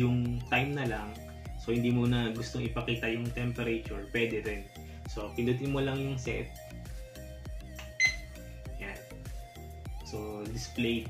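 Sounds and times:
background music with steady beat: 0:00.0 - 0:11.0
alarm clock beep: 0:07.8 - 0:08.3.

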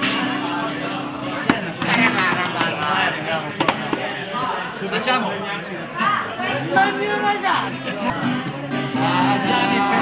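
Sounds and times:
people talking indistinctly: 0:00.0 - 0:10.0
sharp knocks: 0:03.6 - 0:04.1.

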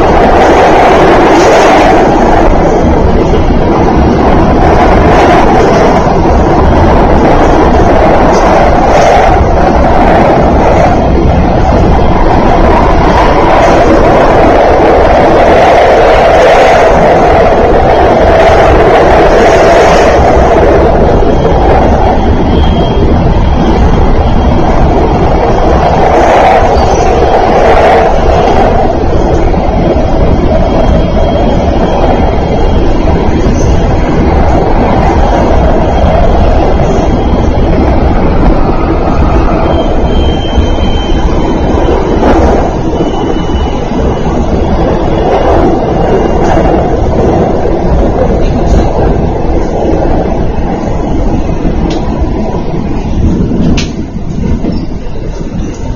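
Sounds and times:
train wheels rumbling on rail: 0:00.0 - 0:55.9.

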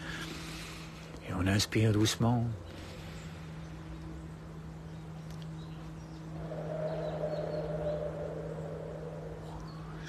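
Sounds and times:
person breathing slowly: 0:00.0 - 0:01.2, 0:02.6 - 0:04.0
low steady hum: 0:00.0 - 0:10.0.

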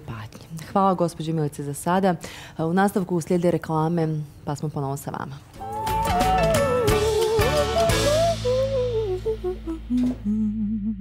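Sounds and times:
tv jingle music: 0:05.6 - 0:08.8.

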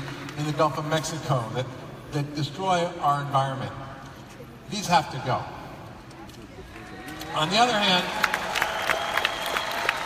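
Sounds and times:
audience applauding: 0:07.9 - 0:10.0.

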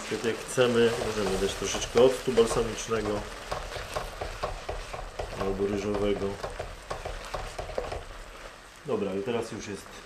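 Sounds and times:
wooden spatula scraping pan: 0:00.0 - 0:08.6
gruel sizzling and bubbling in wok: 0:00.0 - 0:10.0.

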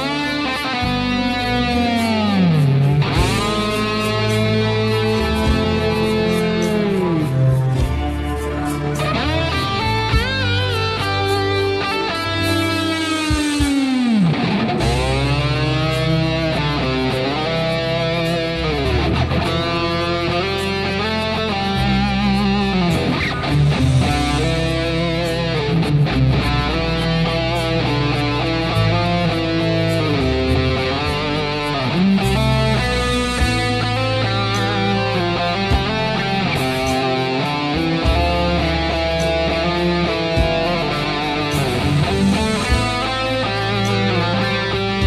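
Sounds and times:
backing track with bass: 0:00.0 - 0:45.0
electric guitar lead melody: 0:00.0 - 0:45.0.

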